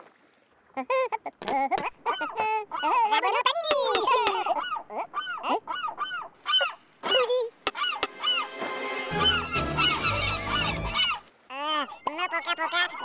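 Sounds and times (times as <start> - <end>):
cartoon seagulls squawking: 1.1 - 13.0.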